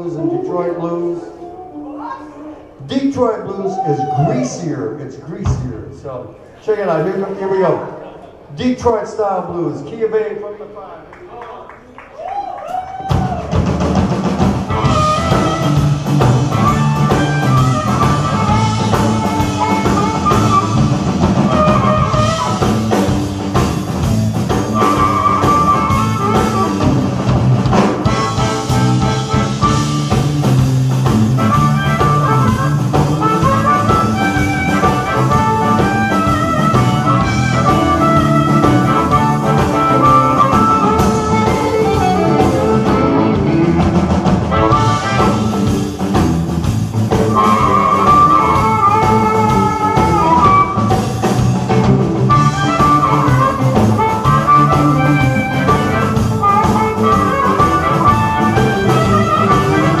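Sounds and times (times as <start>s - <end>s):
electric blues band playing: 12.7s - 60.0s
blues harmonica wailing: 14.6s - 46.0s, 47.1s - 60.0s.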